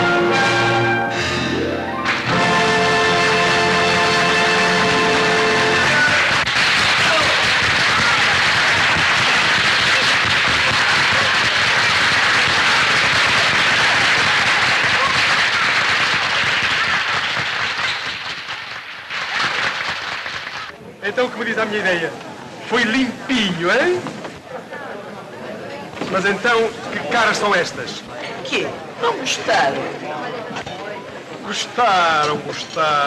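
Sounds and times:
music held chord: 0.0s - 6.0s
crowd voices: 0.0s - 33.0s
applause: 5.7s - 20.7s.

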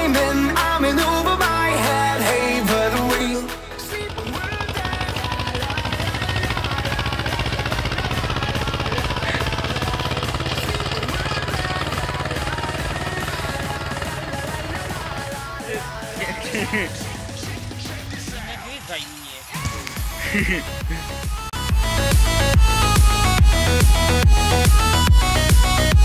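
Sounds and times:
tractor engine running under load: 3.7s - 18.4s.

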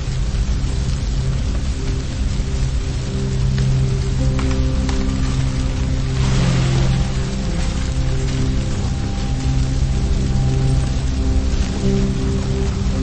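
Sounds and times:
rain-like hiss: 0.0s - 13.0s
slow music with low chords: 0.0s - 13.0s.

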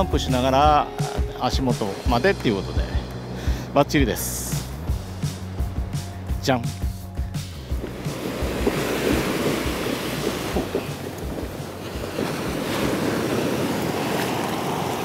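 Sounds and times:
background music: 0.0s - 13.1s
wind buffeting microphone: 7.2s - 15.0s
surf washing onto beach: 7.7s - 15.0s.

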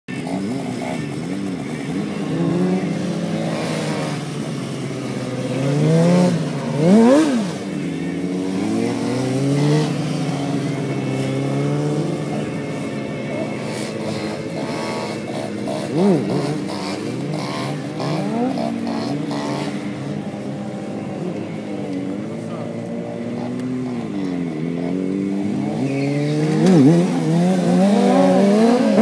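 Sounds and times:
motorcycle engine revving: 0.1s - 29.0s.

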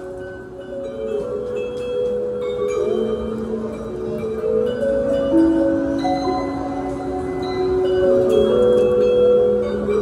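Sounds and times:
bell lyres and xylophones playing chords: 0.0s - 10.0s.

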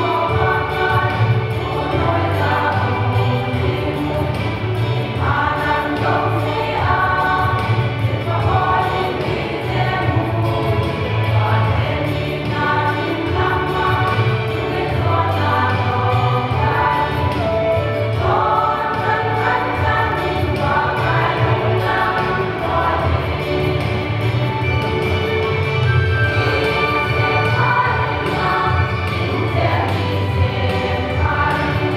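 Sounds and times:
women's choir singing a hymn: 0.0s - 31.9s.

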